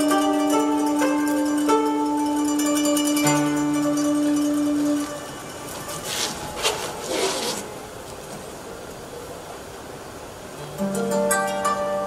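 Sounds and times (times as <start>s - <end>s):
plucked string music: 0.0s - 7.8s, 10.5s - 12.0s
brushing scraping swishes: 5.8s - 7.8s.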